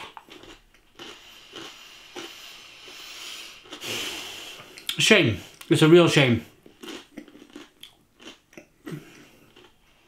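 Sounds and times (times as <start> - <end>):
chewing crispy crust crunches: 0.0 - 2.4, 6.7 - 9.8.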